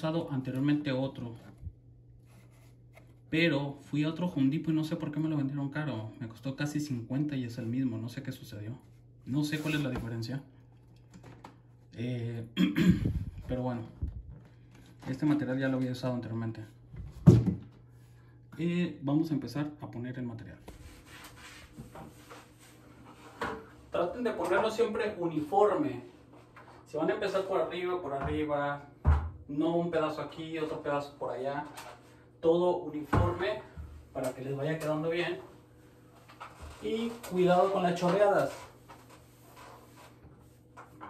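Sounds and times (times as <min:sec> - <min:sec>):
sponge rubbing on tile: 0:20.8 - 0:23.4.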